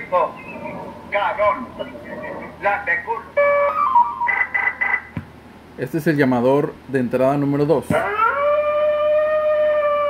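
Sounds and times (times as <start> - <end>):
recorded voice through speaker: 0.0 - 3.4.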